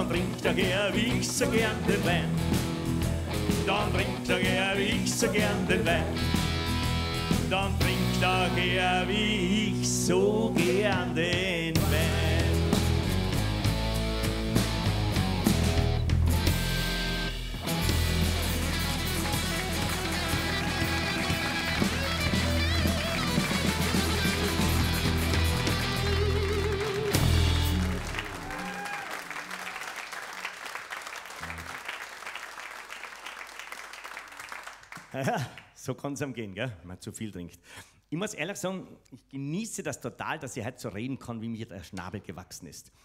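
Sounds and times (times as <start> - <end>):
live band playing: 0.0 - 8.8, 10.6 - 28.9
audience applause: 18.0 - 35.2.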